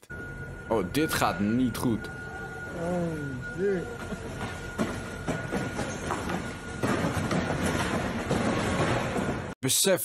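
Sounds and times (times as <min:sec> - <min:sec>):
cardboard boxes crashing down: 0:04.8 - 0:09.5.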